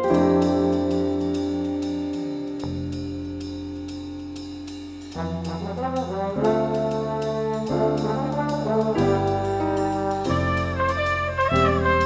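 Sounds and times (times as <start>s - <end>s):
brass phrases: 0.0s - 1.7s, 5.2s - 12.0s
jazz big band playing: 0.0s - 12.0s
steady ticking beat: 0.0s - 12.0s.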